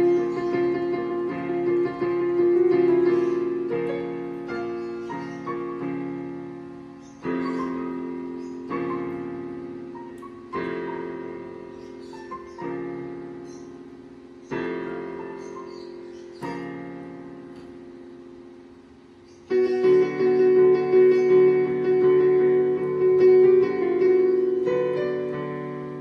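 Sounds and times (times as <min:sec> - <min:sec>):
digital piano chords and runs: 0:00.0 - 0:26.0.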